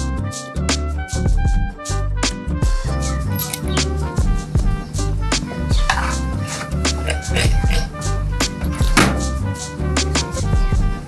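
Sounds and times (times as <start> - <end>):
lo-fi chill-out music with beat: 0.0 - 11.0.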